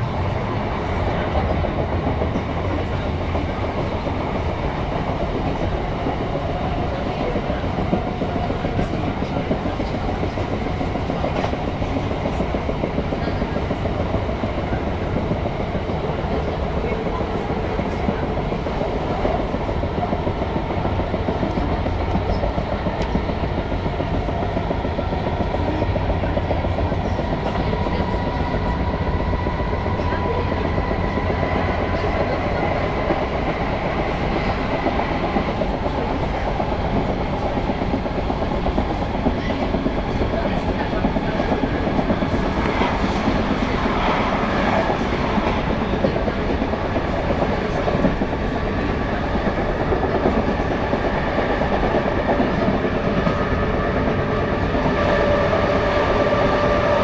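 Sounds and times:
train wheels rumbling: 0.0 - 57.0.

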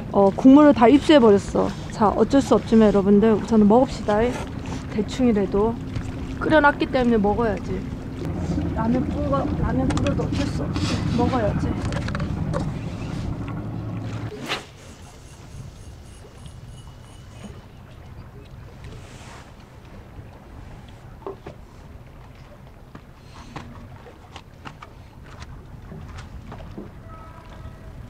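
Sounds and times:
wind rumble on microphone: 0.0 - 22.3.

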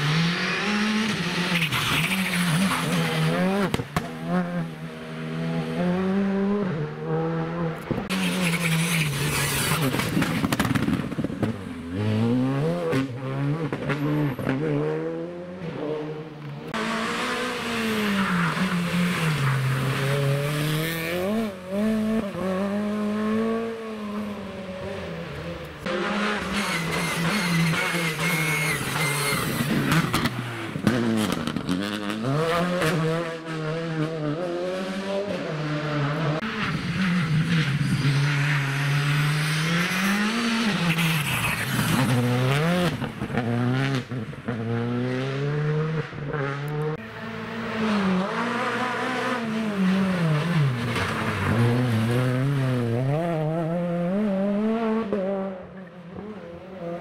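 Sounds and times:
rally car engines passing: 0.0 - 57.0.

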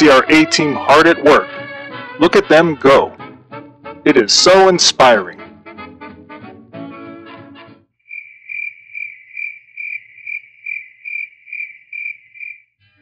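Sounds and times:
swing music cue: 0.0 - 7.8
crickets chirping: 8.1 - 12.8.

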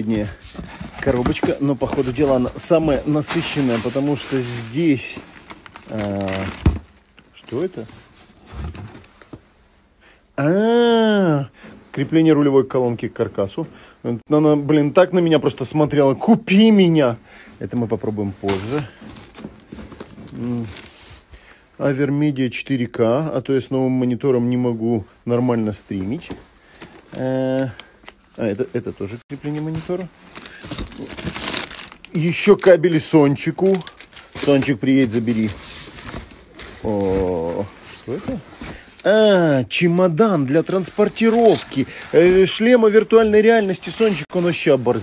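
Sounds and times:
plastic bag crinkling: 0.0 - 7.8, 29.4 - 38.4
handling parts in cardboard box: 0.0 - 9.4, 18.4 - 21.1.

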